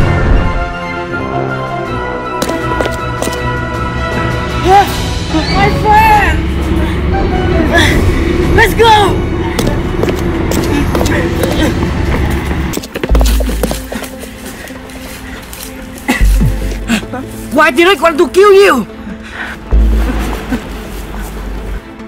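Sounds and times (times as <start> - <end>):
dramatic film score drone: 0.0 - 17.6
deep bass hit: 19.7 - 20.8.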